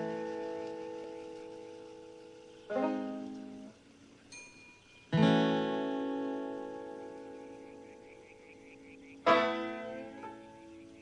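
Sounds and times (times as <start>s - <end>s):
acoustic guitar chord strummed: 5.1s - 7.8s.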